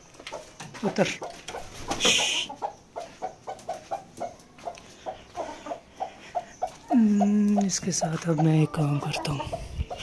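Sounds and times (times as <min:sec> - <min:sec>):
hen clucking: 0:00.1 - 0:10.0.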